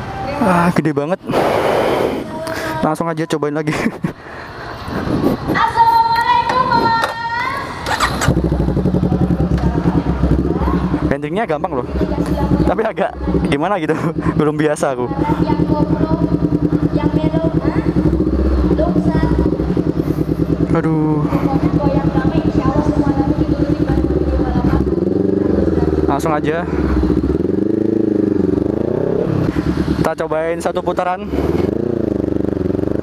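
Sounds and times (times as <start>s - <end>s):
motorcycle engine whining: 4.4s - 33.0s.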